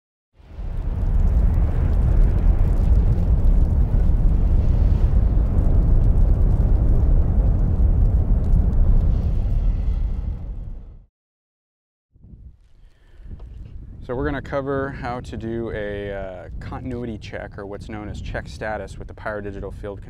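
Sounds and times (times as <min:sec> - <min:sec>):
fire roaring: 0:00.4 - 0:11.1, 0:13.2 - 0:20.0.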